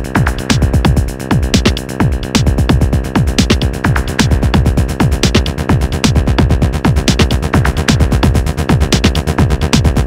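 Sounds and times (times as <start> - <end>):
kick drum dropping in pitch: 0.2 - 10.0.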